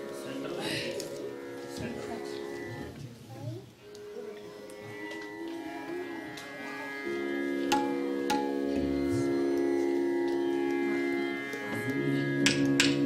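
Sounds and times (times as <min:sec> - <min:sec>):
drone of held tones: 0:03.9 - 0:13.0
tabla strokes: 0:07.6 - 0:09.0.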